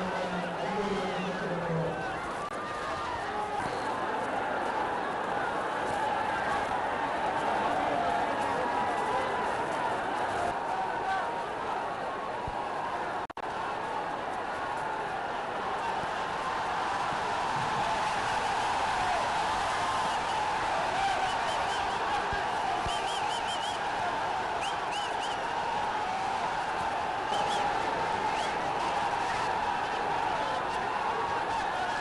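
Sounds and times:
crowd murmur: 0.0s - 32.0s.

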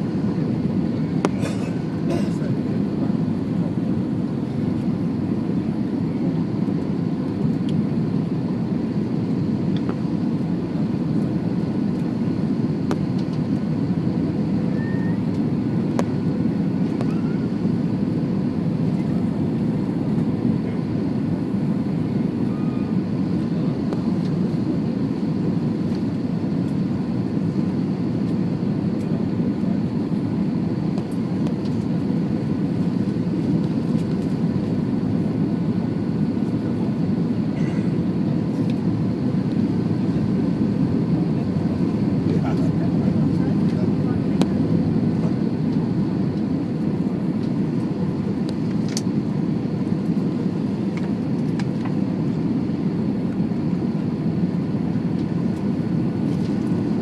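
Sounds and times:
airliner cabin engine rumble: 0.0s - 57.0s
faint steady whining tones: 0.0s - 57.0s.

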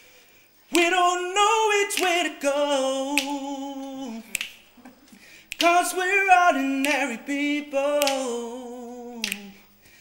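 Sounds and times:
sharp click: 4.3s - 4.6s, 9.2s - 9.5s.

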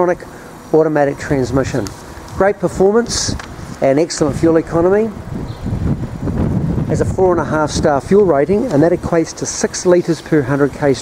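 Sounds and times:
wind buffeting microphone: 1.2s - 9.7s.

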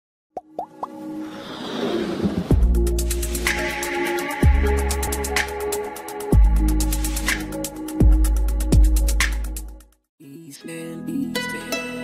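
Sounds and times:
logo intro music: 0.8s - 9.5s
whoosh: 1.2s - 3.7s.

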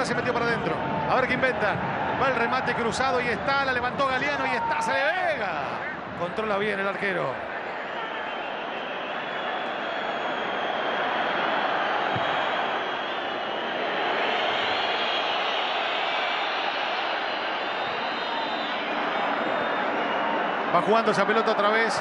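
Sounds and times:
stadium crowd roar: 0.0s - 22.0s.

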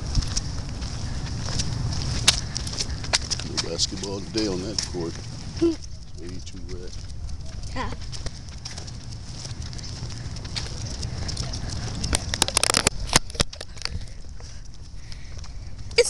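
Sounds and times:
low rumble: 0.0s - 3.6s
crackling clicks: 6.9s - 15.2s
camera handling noise: 12.1s - 14.0s.

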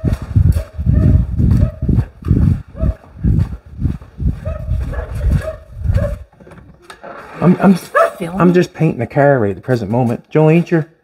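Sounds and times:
footsteps on concrete floor: 0.0s - 11.0s.

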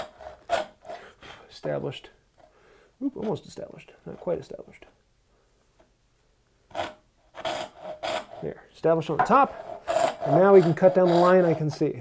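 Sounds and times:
saw stroke across wood: 9.4s - 11.9s.

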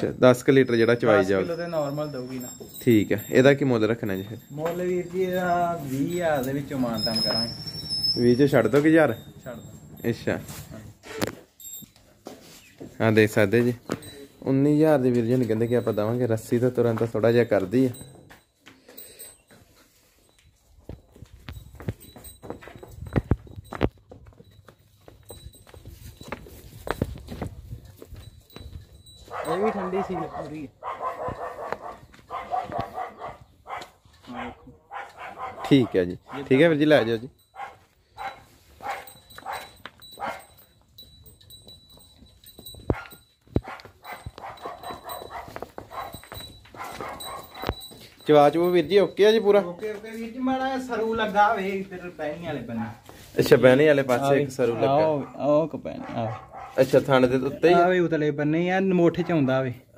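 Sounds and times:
cow hooves on hard ground: 0.0s - 58.1s
dog barking: 29.3s - 36.6s, 37.5s - 40.6s, 42.9s - 47.8s, 52.7s - 53.1s, 54.6s - 56.9s, 59.2s - 59.6s.

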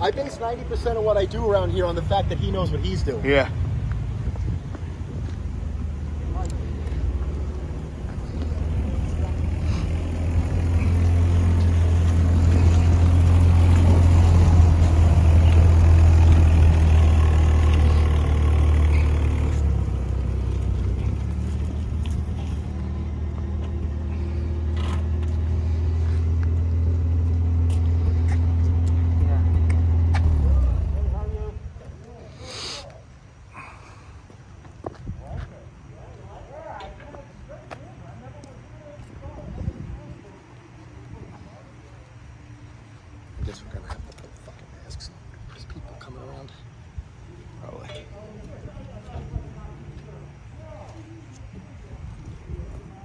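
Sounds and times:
car engine rumbling driving past: 0.0s - 31.8s.

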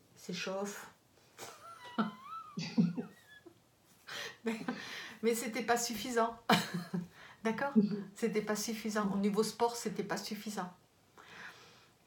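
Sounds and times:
woman laughing: 1.4s - 3.5s, 6.5s - 7.1s.

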